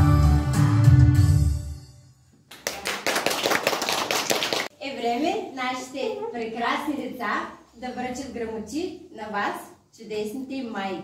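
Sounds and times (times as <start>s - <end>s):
audience applause: 2.6s - 4.7s.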